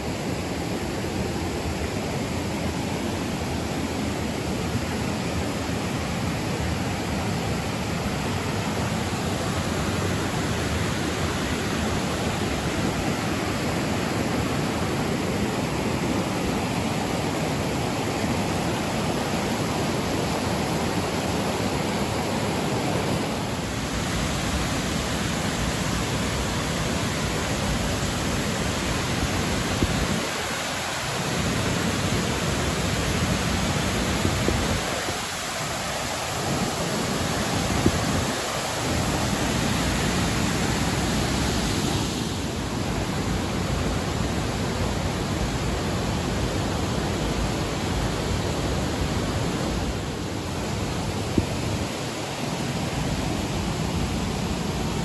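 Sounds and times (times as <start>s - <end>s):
river rushing over rocks: 0.0s - 55.0s.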